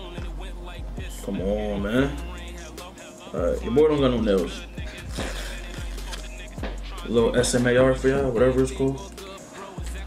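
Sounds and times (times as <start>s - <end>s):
background music: 0.0s - 10.0s
sticker peeling: 5.0s - 6.4s.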